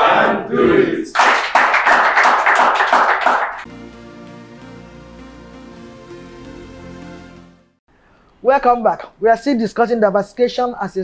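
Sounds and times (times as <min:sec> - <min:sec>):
studio audience clapping: 0:01.1 - 0:03.9.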